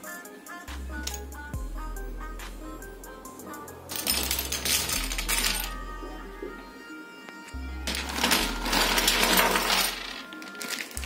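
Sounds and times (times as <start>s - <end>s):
toy kitchenware clattering: 4.0s - 5.8s, 7.9s - 11.0s.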